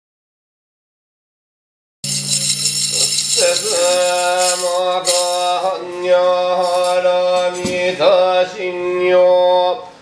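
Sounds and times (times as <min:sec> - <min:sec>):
metallic jingling rattle: 0:02.0 - 0:05.8, 0:06.6 - 0:07.6.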